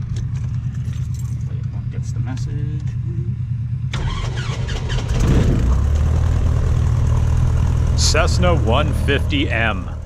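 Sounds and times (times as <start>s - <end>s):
airplane engine and propeller: 0.0s - 10.0s.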